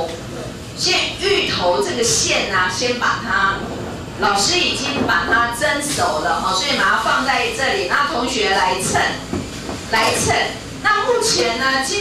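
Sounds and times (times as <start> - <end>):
woman speaking into microphone: 0.0 - 12.0.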